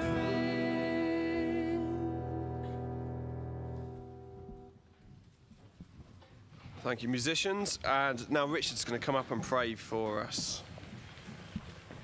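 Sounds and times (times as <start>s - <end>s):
band chord ringing: 0.0s - 4.8s.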